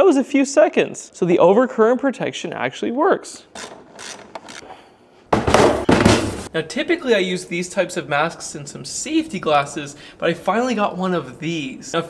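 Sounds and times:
battery cable clamps clicking: 0:03.6 - 0:04.7.

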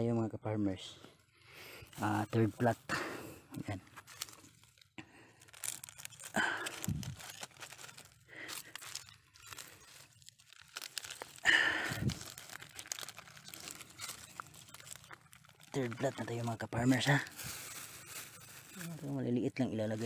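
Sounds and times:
dry mulch crackling underfoot: 0:01.5 - 0:20.0.

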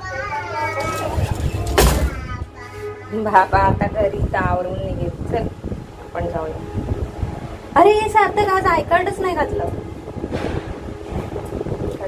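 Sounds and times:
lift car travelling rumble: 0:00.3 - 0:12.0.

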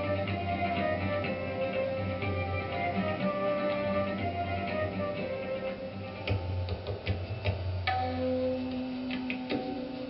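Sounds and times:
low steady drone: 0:00.0 - 0:06.6.

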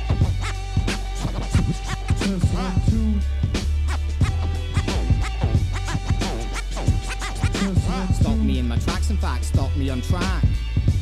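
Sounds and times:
deep bass line: 0:00.0 - 0:11.0
hip hop beat: 0:00.0 - 0:11.0
record scratching: 0:00.1 - 0:02.7, 0:03.9 - 0:08.5.

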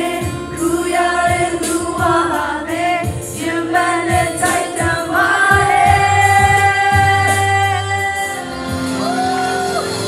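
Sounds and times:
woman singing into a microphone: 0:00.0 - 0:09.3
loud amplified backing music: 0:00.0 - 0:10.0.

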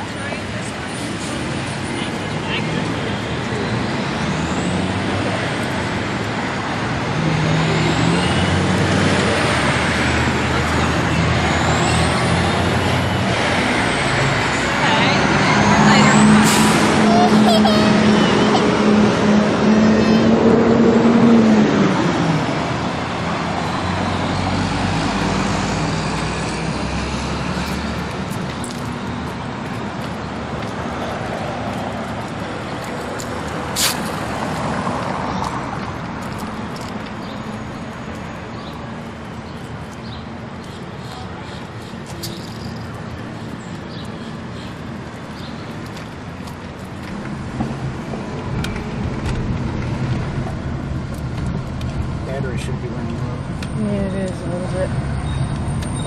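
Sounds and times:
large vehicle engine running: 0:00.0 - 0:56.0
street traffic: 0:00.0 - 0:56.0.

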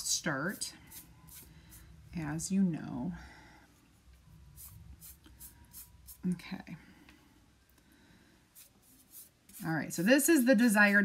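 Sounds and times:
paintbrush scratching on wood: 0:04.6 - 0:06.3, 0:08.6 - 0:09.7.

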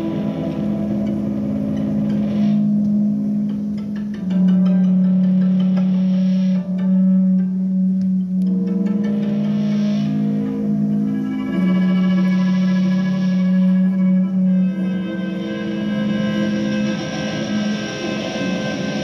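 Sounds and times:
small ensemble with violin: 0:00.0 - 0:19.0.

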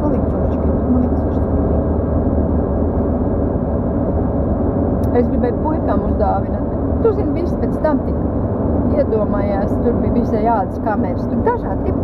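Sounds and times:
car interior road and engine rumble: 0:00.0 - 0:12.0.

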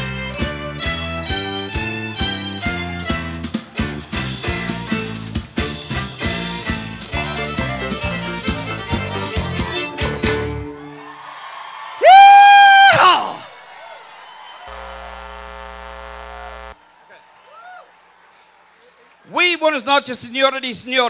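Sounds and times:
country-rock band playing: 0:00.0 - 0:10.8
crowd whooping: 0:10.7 - 0:15.8, 0:16.4 - 0:19.1
loud vocal shout: 0:10.9 - 0:14.0.

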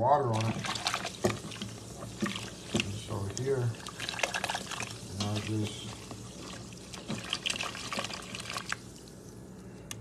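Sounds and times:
water splashing in a metal pot: 0:00.2 - 0:09.2.

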